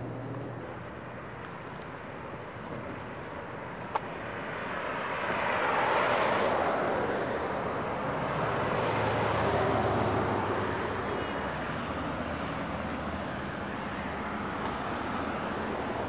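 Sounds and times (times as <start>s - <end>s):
cars passing on street: 0.0s - 16.0s.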